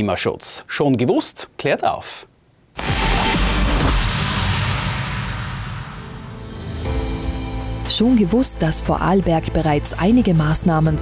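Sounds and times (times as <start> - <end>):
whoosh with bass rumble: 2.8 - 7.9.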